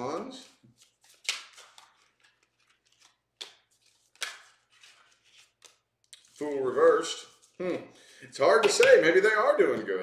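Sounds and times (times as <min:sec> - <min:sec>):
cards rustling: 0:00.0 - 0:07.6
cards snapping and slapping: 0:00.7 - 0:06.3.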